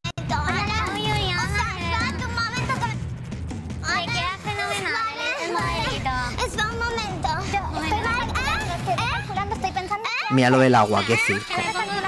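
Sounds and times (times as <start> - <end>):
voices talking over one another: 3.8 - 12.0.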